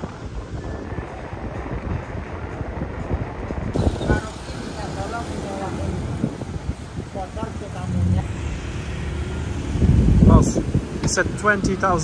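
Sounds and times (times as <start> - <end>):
motor vehicle rumble: 0.0 - 12.0.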